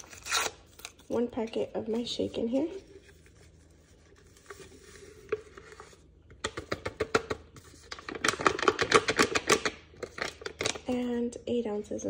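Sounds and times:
packet crinkling: 7.8 - 11.0.

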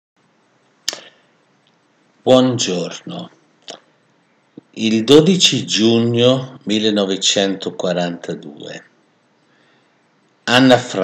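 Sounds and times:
faint background hiss: 0.2 - 11.0.

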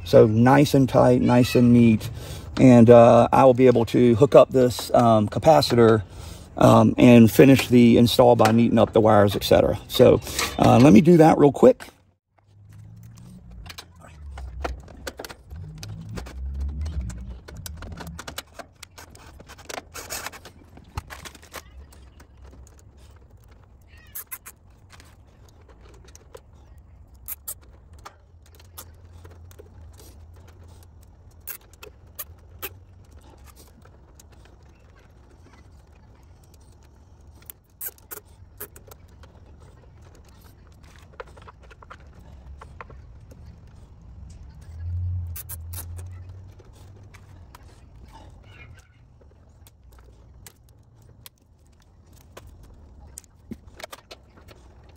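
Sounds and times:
small clicks and rattles of wires: 11.8 - 54.9.

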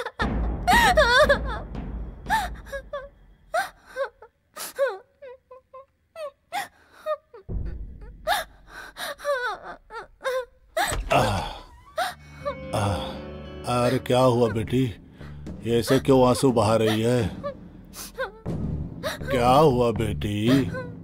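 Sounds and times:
woman crying: 0.0 - 14.7, 15.8 - 19.5, 20.3 - 21.0.

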